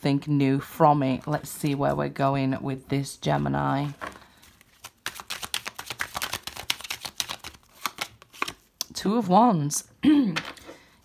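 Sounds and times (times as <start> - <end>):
cards being shuffled: 3.8 - 8.8.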